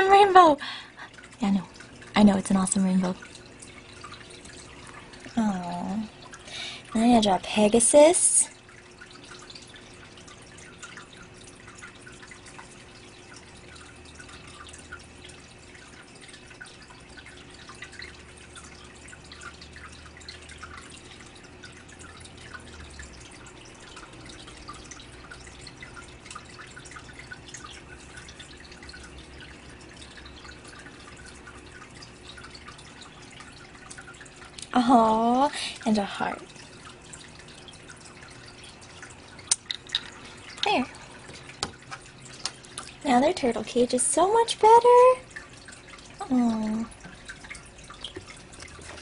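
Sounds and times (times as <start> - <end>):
faint steady hum: 0.0 - 49.0
water dripping and trickling: 0.0 - 49.0.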